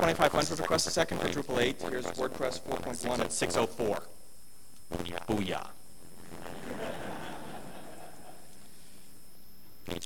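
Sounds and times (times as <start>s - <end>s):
audience chuckling: 6.4s - 8.6s.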